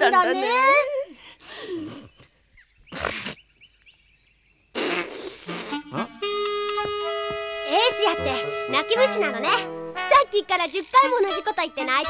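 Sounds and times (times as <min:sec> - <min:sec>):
woman blowing her nose: 0:04.8 - 0:06.2.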